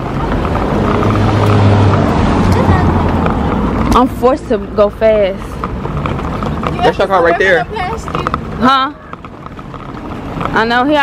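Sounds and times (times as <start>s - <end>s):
car engine humming: 0.0s - 11.0s.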